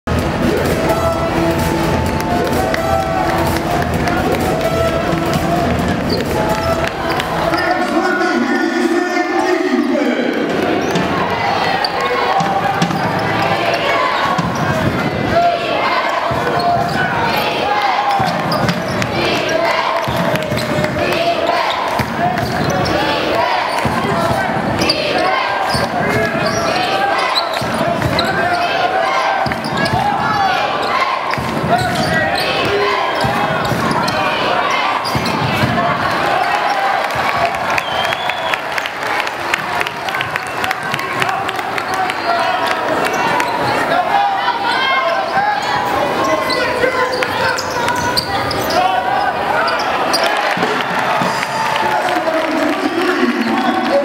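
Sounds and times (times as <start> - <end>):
arena crowd voices: 0.0 - 54.0
music: 0.1 - 7.6.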